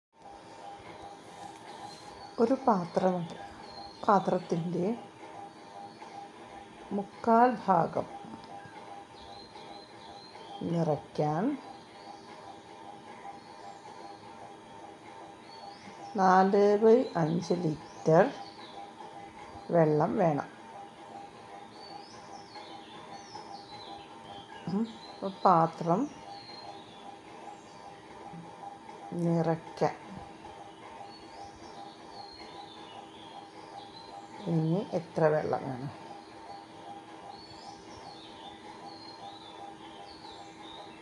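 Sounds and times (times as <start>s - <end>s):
low even hum: 0.2s - 41.0s.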